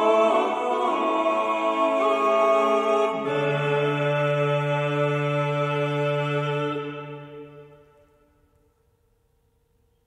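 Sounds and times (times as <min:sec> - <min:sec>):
male choir holding a chord: 0:00.0 - 0:07.8.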